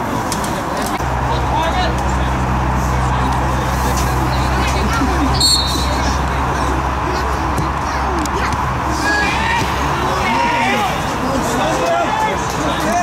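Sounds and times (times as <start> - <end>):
distant players shouting: 5.2 - 7.8, 8.4 - 13.0.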